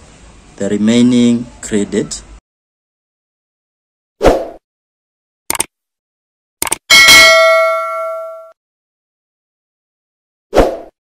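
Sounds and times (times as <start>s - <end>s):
notification bell chime: 6.9s - 8.6s.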